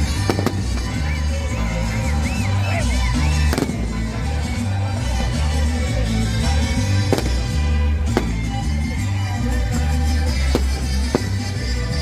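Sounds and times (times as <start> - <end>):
music with steady bass line: 0.0 - 12.0
firework bang: 3.5 - 3.8, 7.1 - 8.5.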